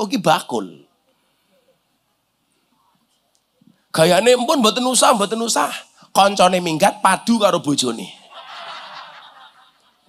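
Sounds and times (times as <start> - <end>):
audience laughing softly: 8.2 - 10.0.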